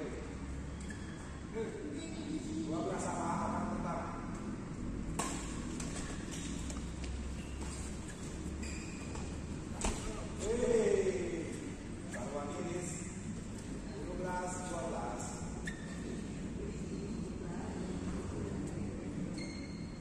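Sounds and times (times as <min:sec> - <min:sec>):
rackets hitting shuttlecock: 0:05.1 - 0:08.4, 0:09.0 - 0:10.2.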